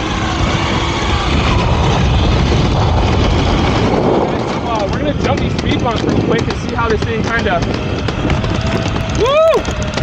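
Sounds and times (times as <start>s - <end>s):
skateboard wheels rumbling on asphalt: 0.0s - 10.0s
person exclaiming whoa: 9.2s - 9.6s.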